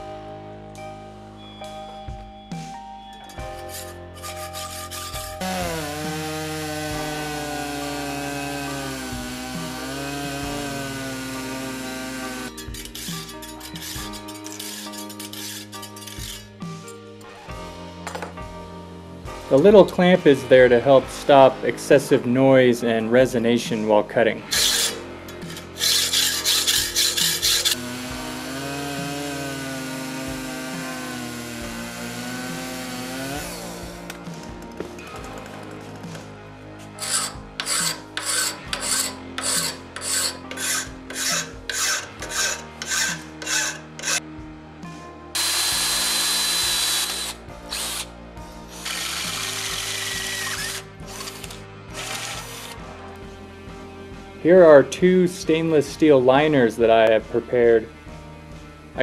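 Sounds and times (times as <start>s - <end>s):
hacksaw cutting steel: 3.6s - 16.5s, 24.5s - 34.2s, 36.9s - 44.2s, 45.4s - 48.1s, 48.8s - 52.8s.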